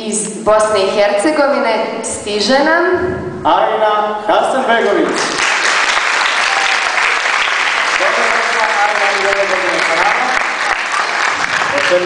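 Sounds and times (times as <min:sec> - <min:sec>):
audience applauding: 0:05.1 - 0:12.0.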